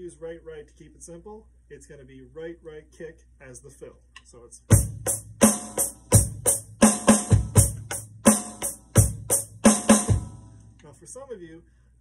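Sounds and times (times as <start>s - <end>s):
electronic drum kit groove: 4.7s - 10.5s.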